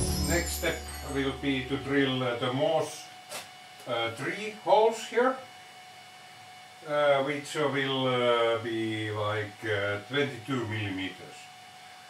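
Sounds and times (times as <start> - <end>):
low steady hum: 0.0 - 3.2.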